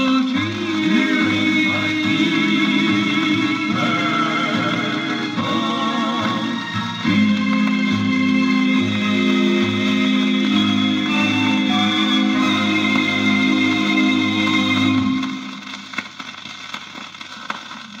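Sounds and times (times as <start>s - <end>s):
doo-wop record playing: 0.0s - 18.0s
record surface hiss and crackles: 12.0s - 18.0s.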